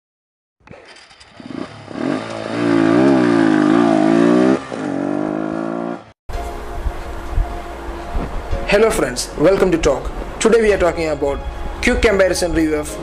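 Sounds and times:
engine-like drone: 0.6s - 11.8s.

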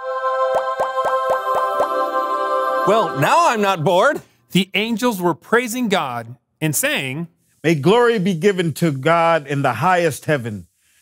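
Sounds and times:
bright held chord: 0.0s - 4.1s.

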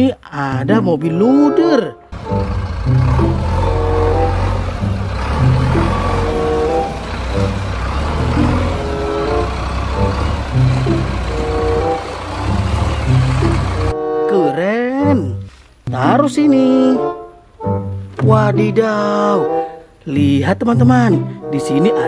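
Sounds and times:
background music with repeating melody: 0.5s - 22.0s
diesel engine running: 2.1s - 14.0s.

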